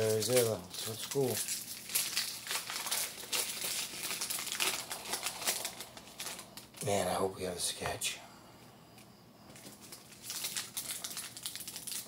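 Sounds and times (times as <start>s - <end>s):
pack wrapper crinkling: 0.0s - 7.0s, 9.6s - 12.0s.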